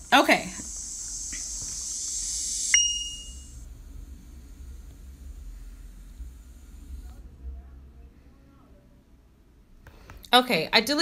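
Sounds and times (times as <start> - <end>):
high hiss: 0.0 - 7.1
short high electronic beep: 2.7 - 3.5.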